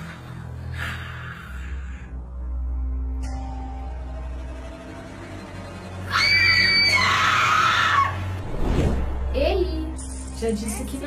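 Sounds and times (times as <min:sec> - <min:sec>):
woman screaming: 0:06.1 - 0:08.2.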